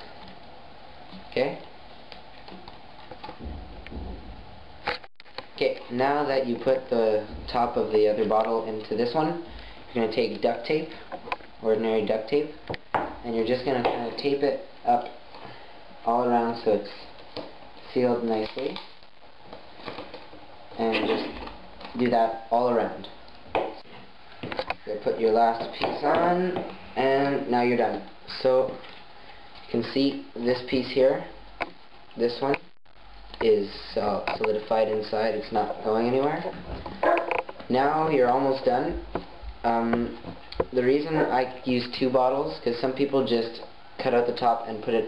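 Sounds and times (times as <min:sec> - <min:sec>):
clicks and crackles: 0:00.1 - 0:05.9, 0:18.2 - 0:22.2, 0:23.0 - 0:24.9, 0:36.8 - 0:37.7
duct tape handling noise: 0:04.8 - 0:05.9
plastic bottles handling noise: 0:16.8 - 0:29.8.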